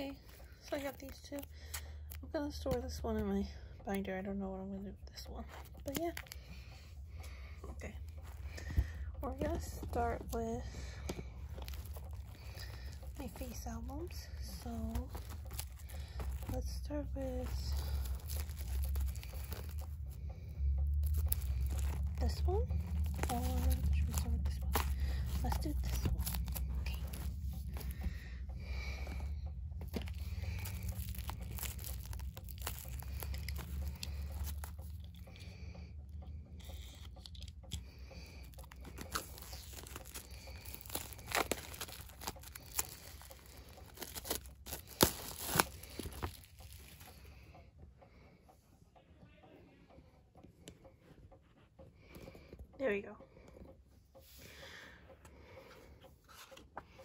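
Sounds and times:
plastic shrink wrap crinkling: 0:07.8 - 0:28.2, 0:29.0 - 0:35.5, 0:36.6 - 0:47.4.

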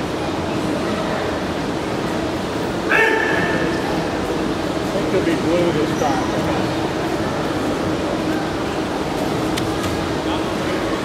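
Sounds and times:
gym hall background noise: 0:00.0 - 0:11.0
person shouting: 0:02.9 - 0:03.8.

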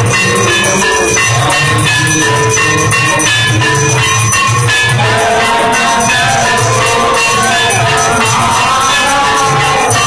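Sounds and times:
bells ringing: 0:00.0 - 0:10.0
drums beating: 0:00.0 - 0:10.0.

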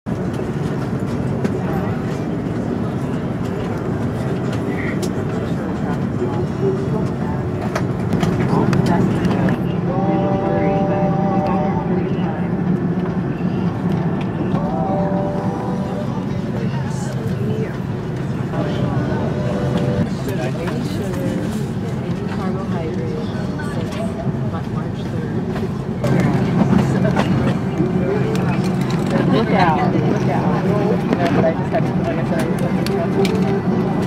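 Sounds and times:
aircraft ventilation hum: 0:00.1 - 0:34.0
passengers' voices: 0:00.1 - 0:34.0.

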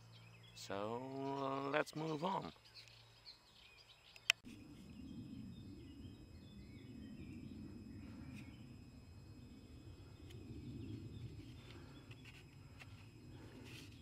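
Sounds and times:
birds chirping faintly: 0:00.0 - 0:14.0
bicycle rumbling on sandy path: 0:09.7 - 0:14.0.

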